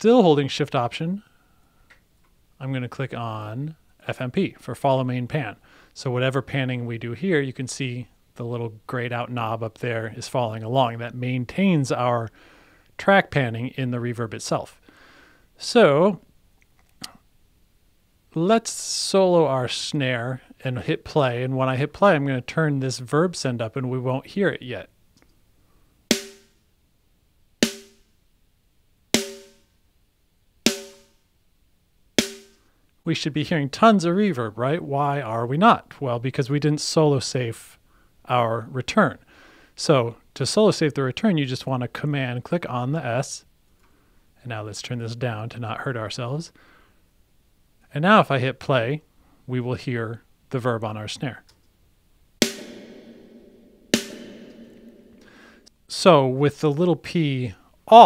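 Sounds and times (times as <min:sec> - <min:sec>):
dry snare drum hits: 0:26.1 - 0:26.6, 0:27.6 - 0:28.1, 0:29.2 - 0:29.7, 0:30.7 - 0:31.1, 0:32.2 - 0:32.6, 0:52.4 - 0:55.6.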